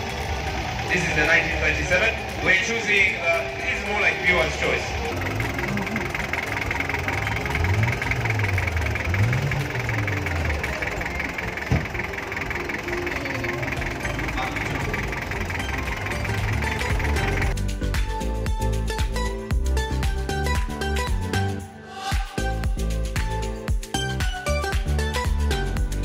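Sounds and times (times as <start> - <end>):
crowd chatter: 0.0 - 17.6
car engine revving: 0.0 - 17.7
music: 0.0 - 26.0.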